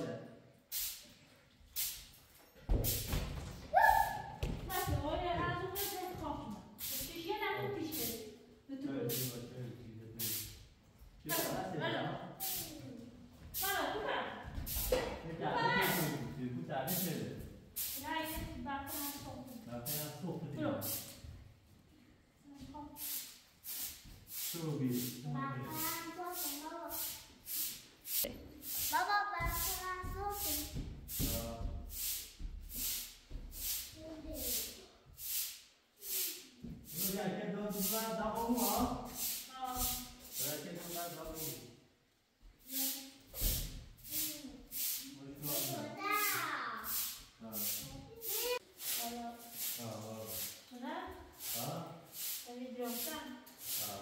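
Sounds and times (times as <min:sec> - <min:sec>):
broom sweeping concrete floor: 0:00.6 - 0:08.4, 0:09.0 - 0:10.7, 0:11.3 - 0:21.4, 0:22.5 - 0:41.8, 0:42.4 - 0:54.0.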